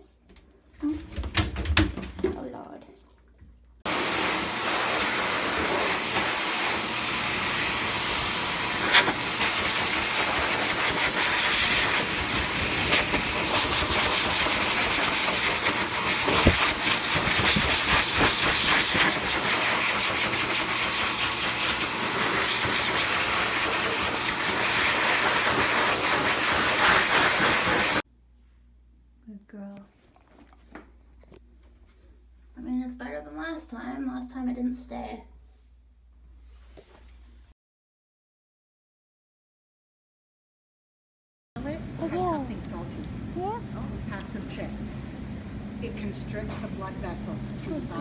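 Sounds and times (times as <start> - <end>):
blow dryer blowing air: 3.9 - 28.0.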